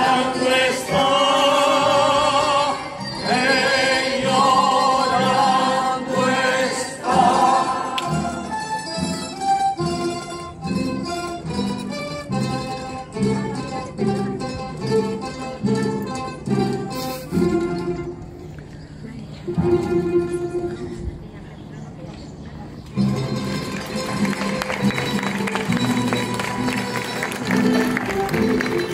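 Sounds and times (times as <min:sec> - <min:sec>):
choir singing a hymn: 0:00.0 - 0:08.6
guitars strumming and plucking: 0:07.0 - 0:18.3.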